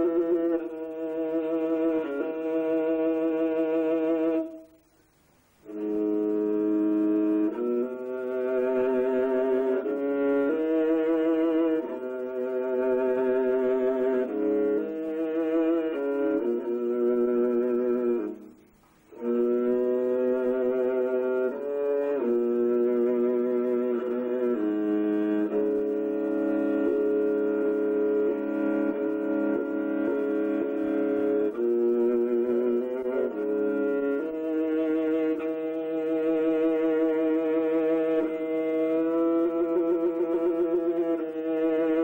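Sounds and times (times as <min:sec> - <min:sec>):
bowed string instrument: 0:00.0 - 0:42.0.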